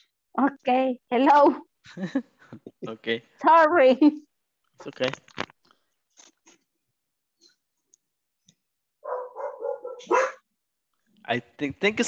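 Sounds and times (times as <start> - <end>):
dog barking over microphone: 9.0 - 10.4.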